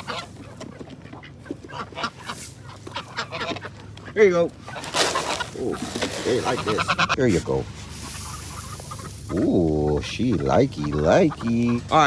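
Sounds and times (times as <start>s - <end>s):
ducks quacking: 0.0s - 12.0s
geese honking: 0.0s - 12.0s.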